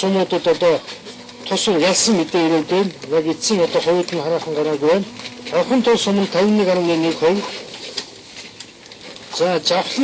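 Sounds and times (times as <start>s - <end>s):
man speaking into microphones: 0.0s - 7.6s, 9.3s - 10.0s.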